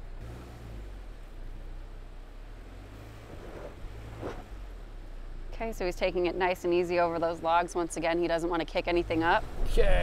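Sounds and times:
car engine running at low revs: 0.0s - 10.0s.

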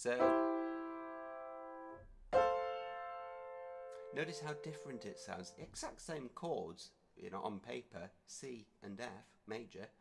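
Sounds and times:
piano chord ringing: 0.0s - 5.6s.

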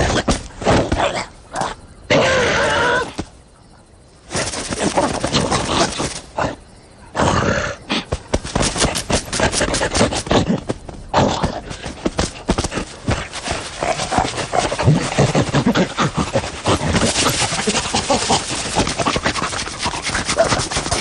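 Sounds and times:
cartoon scuffling and scraping: 4.2s - 6.4s, 8.1s - 21.0s
lion panting grunts: 7.2s - 21.0s.

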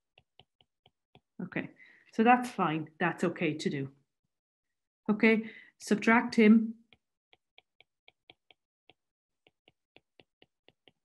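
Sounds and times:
stylus tapping on tablet screen: 0.0s - 1.4s, 6.8s - 11.0s.

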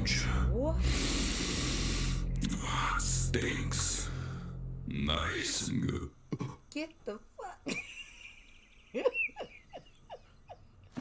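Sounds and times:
faint high whine: 0.0s - 6.2s
woman laughing: 7.6s - 11.0s.

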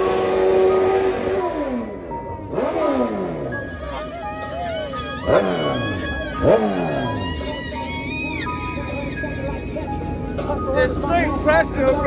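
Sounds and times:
background music: 0.0s - 12.0s
engine throttle blips: 0.0s - 12.0s.

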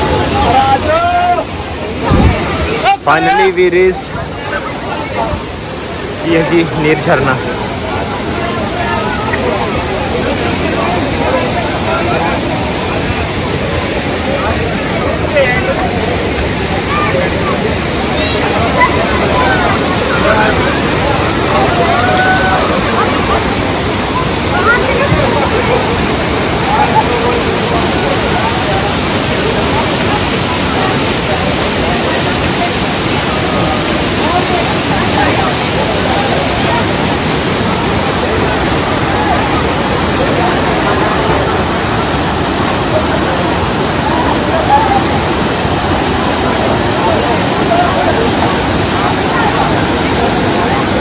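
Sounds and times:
faint voices: 0.0s - 51.0s
rush of falling water: 0.0s - 51.0s.

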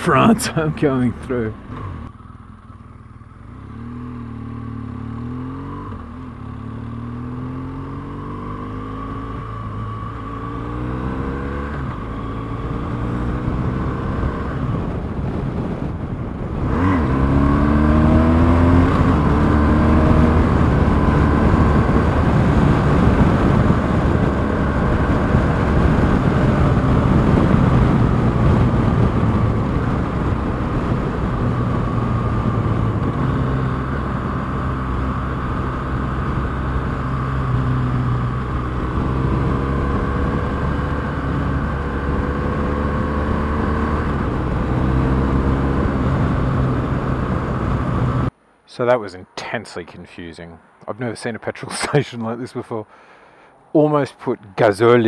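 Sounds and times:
motorcycle engine accelerating: 0.0s - 48.3s
wind noise: 11.8s - 48.3s.

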